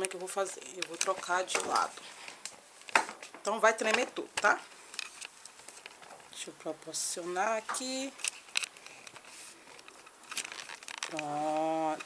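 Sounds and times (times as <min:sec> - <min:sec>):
camera handling clicks and rustles: 0:00.0 - 0:06.3, 0:08.2 - 0:12.0.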